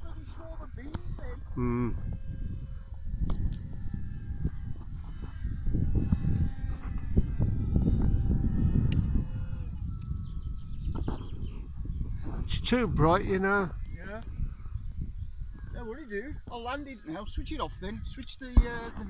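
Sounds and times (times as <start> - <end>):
faint electric motor whine: 0.0 - 19.0
wind buffeting microphone: 0.0 - 19.0.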